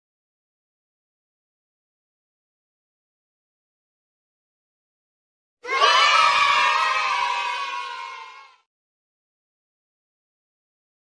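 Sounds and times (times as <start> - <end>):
crowd cheering and shouting: 5.6 - 8.7.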